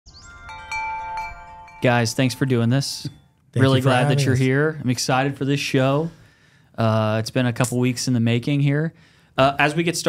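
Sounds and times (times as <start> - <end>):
bright ringing chimes: 0.1 - 4.5.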